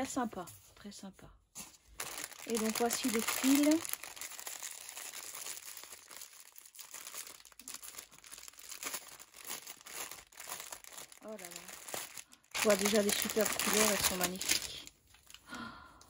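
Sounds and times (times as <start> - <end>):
plastic bag crinkling: 1.9 - 15.5.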